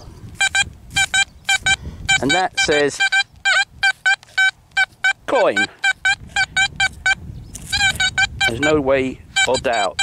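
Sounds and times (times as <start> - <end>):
metal detector beeps: 0.4 - 10.0.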